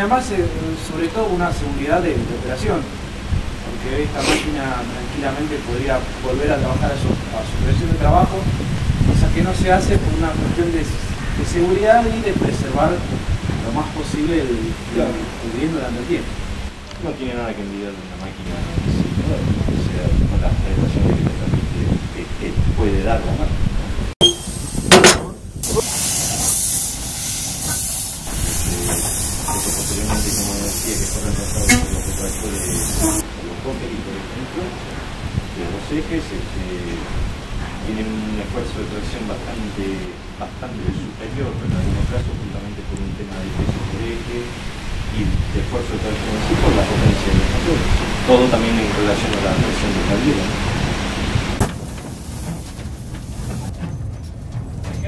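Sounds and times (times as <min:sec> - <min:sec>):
steam locomotive hissing: 0:04.0 - 0:04.7, 0:24.2 - 0:33.5, 0:51.8 - 0:53.7.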